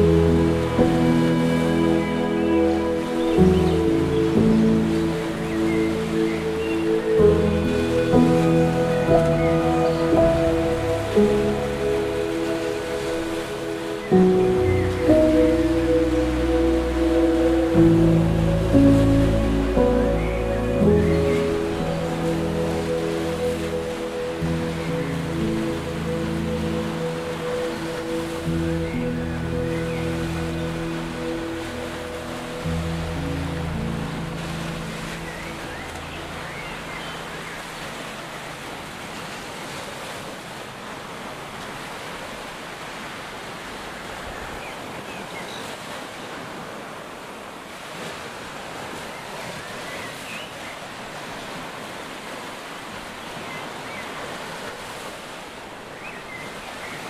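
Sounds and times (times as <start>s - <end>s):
slow gentle instrumental music: 0.0s - 40.4s
faint water waves: 0.0s - 57.0s.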